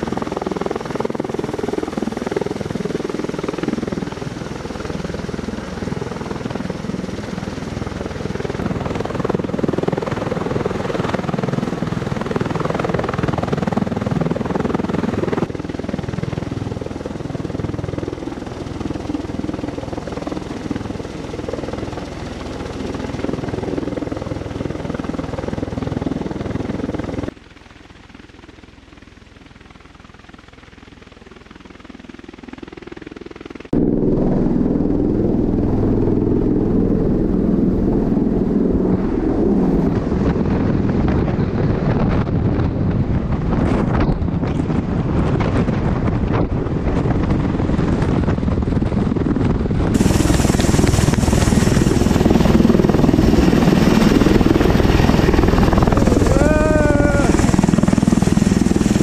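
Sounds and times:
tiltrotor aircraft hovering: 0.0s - 59.0s
rotor downwash buffeting microphone: 33.8s - 59.0s
person shouting: 56.0s - 57.5s.

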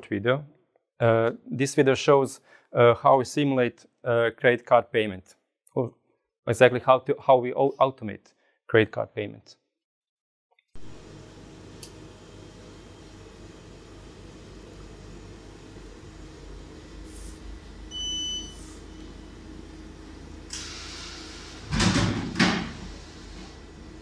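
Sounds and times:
low machine hum: 10.8s - 24.0s
card reader beep: 17.9s - 18.8s
hiss: 20.5s - 21.7s
vending machine mechanical clunks: 20.5s - 23.8s.

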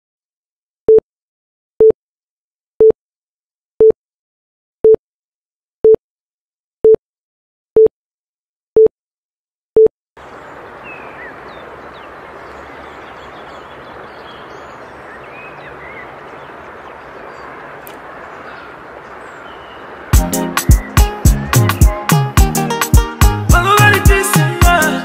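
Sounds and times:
faint chirps: 10.2s - 21.9s.

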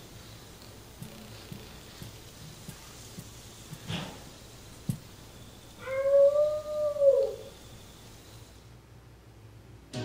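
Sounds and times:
wolf-like howl: 5.8s - 7.5s.

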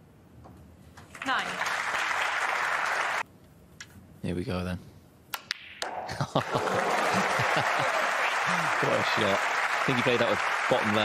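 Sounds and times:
audience applauding: 1.1s - 3.2s, 6.4s - 11.0s.

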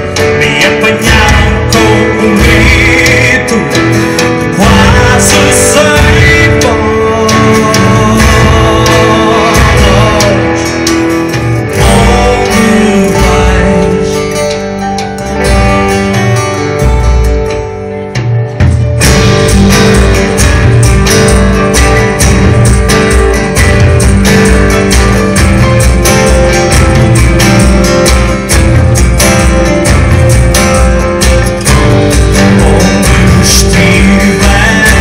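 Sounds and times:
live band playing: 0.0s - 35.0s.

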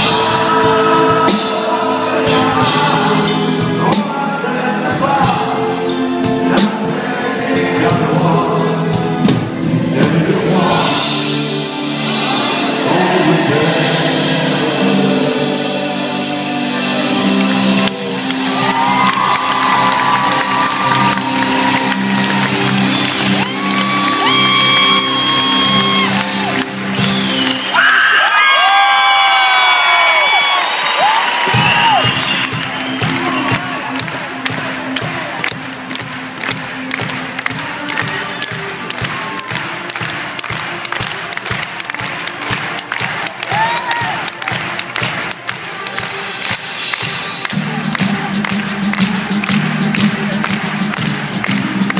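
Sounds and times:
live band playing: 0.0s - 51.9s
audience clapping along: 17.0s - 51.9s
crowd whistling: 17.8s - 34.0s
crowd cheering and whooping: 17.8s - 34.4s, 42.8s - 44.6s.

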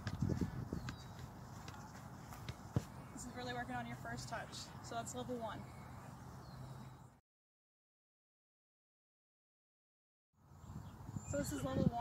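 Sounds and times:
foot tapping soccer ball: 0.0s - 3.1s.

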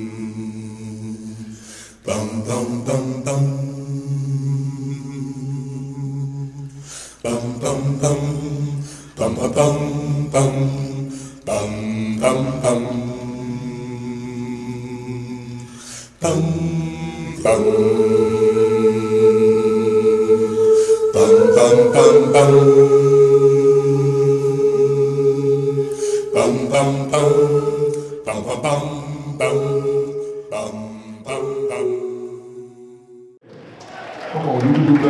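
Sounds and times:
voices singing a cappella: 0.0s - 33.4s.

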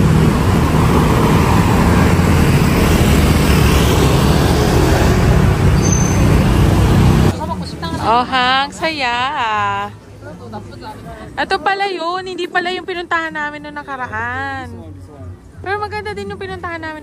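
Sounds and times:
cars and scooters passing: 0.0s - 9.7s.

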